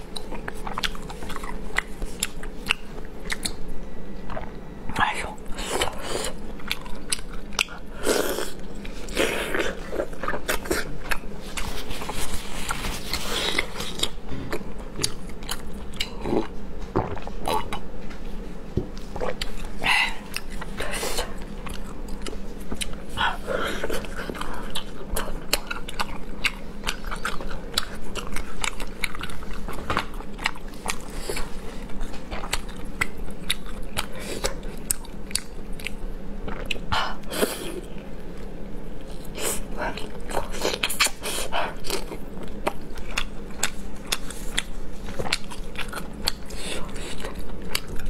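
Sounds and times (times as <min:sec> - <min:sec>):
wet chewing: 0:00.0 - 0:04.6, 0:19.1 - 0:36.9, 0:39.1 - 0:48.0.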